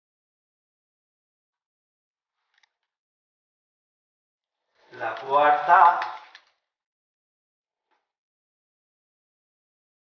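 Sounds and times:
man speaking: 4.9s - 6.3s.

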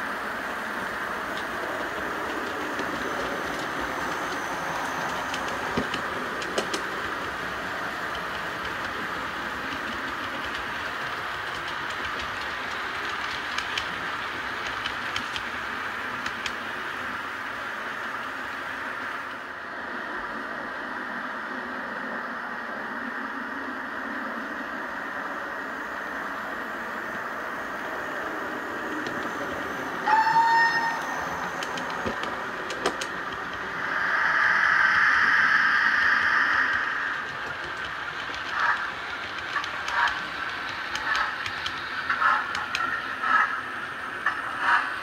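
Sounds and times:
steam locomotive chuffs: 0.0s - 19.5s, 25.4s - 45.0s
steam hiss: 0.0s - 19.6s, 24.7s - 45.0s
steam whistle blast: 30.0s - 31.2s.

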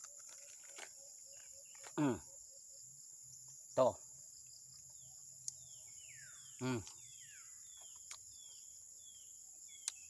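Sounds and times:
crickets chirping: 0.0s - 10.0s
man murmuring: 6.6s - 6.9s.

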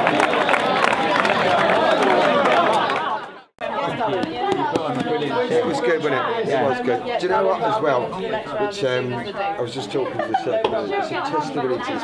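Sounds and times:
people chatting: 0.0s - 12.0s.

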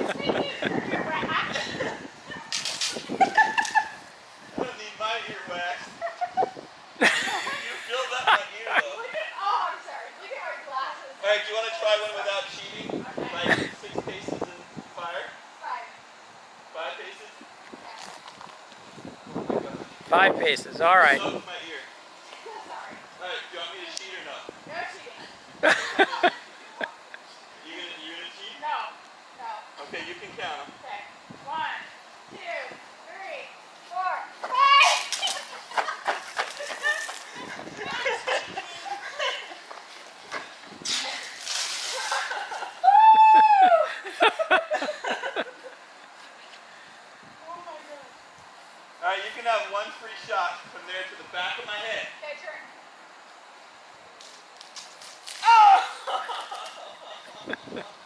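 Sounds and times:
person laughing: 3.1s - 4.0s, 5.9s - 8.4s, 41.9s - 45.7s, 55.8s - 58.0s
water gun spray hissing: 40.8s - 42.6s
excited voices: 41.9s - 44.4s, 55.4s - 57.8s
person crying out: 42.8s - 44.0s, 55.4s - 56.1s.

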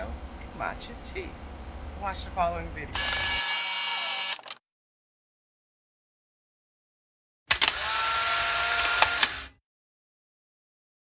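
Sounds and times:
mechanical whirring buzz: 2.9s - 4.6s, 7.5s - 9.6s
mechanical clicks: 3.0s - 4.6s, 7.5s - 9.6s.

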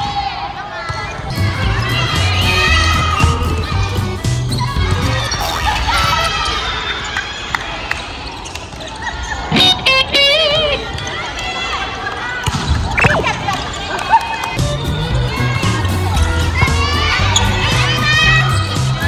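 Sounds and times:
background music: 1.3s - 6.3s, 14.5s - 19.0s
players calling out: 1.6s - 7.4s, 12.9s - 19.0s
volleyball being struck: 13.0s - 13.4s.

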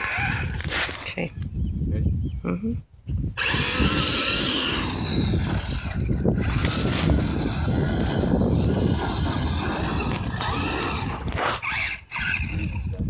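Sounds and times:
rc truck motors whining: 0.0s - 0.8s, 3.4s - 13.0s
tires rumbling in sand: 3.4s - 12.9s.

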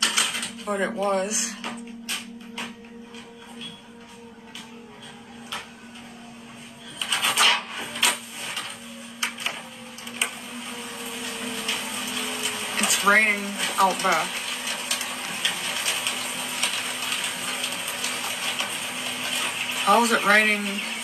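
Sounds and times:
low steady hum: 0.0s - 17.9s
rain falling: 0.0s - 21.0s.

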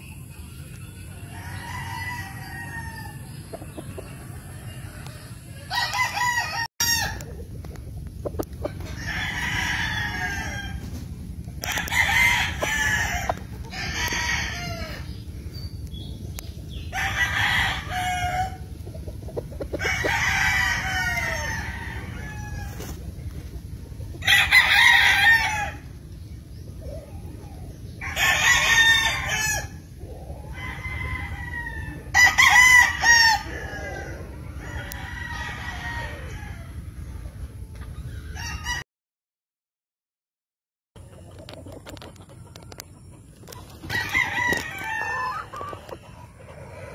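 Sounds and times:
roosters crowing: 0.0s - 37.1s, 38.1s - 38.8s, 43.5s - 46.9s
steady low rumble: 2.0s - 28.1s.

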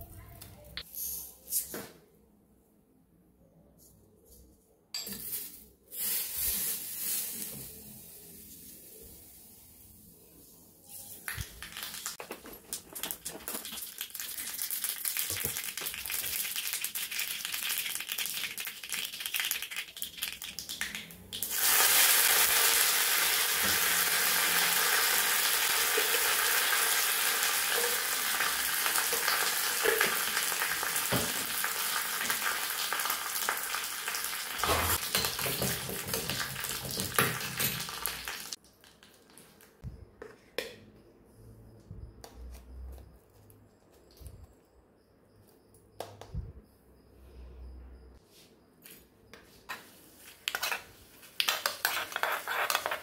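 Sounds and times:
seeds sizzling in hot oil: 5.3s - 9.9s, 11.0s - 39.4s.

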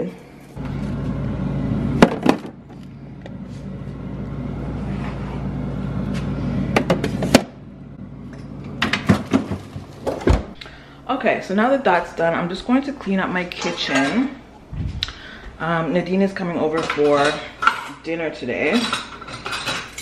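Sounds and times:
steady freezer hum: 0.0s - 20.0s.

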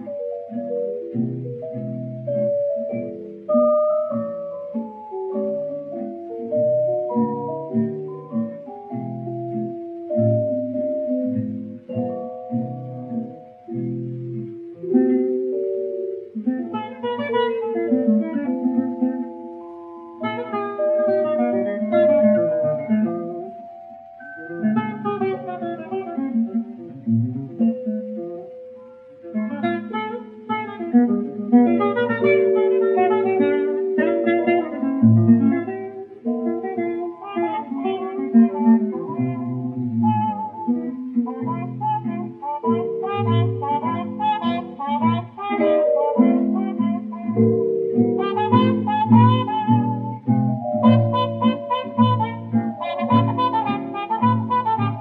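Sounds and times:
jazz trio playing slow blues: 0.0s - 23.5s, 29.4s - 55.0s.

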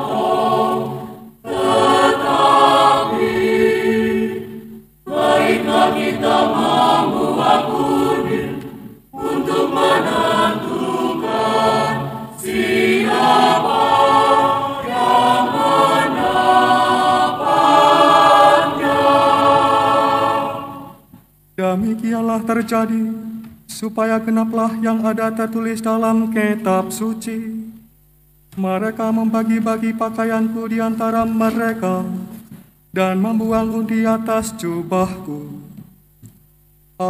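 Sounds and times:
choir singing: 0.0s - 21.1s.

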